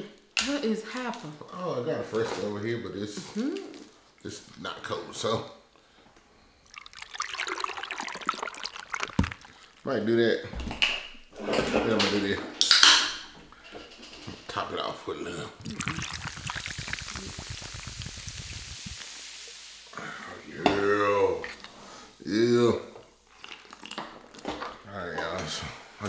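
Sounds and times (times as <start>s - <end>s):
person speaking: 15.2s - 18.9s.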